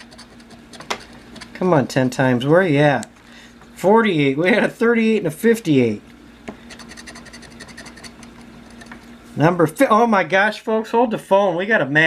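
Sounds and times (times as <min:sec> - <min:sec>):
metal token scraping lottery ticket: 0:06.7 - 0:09.0.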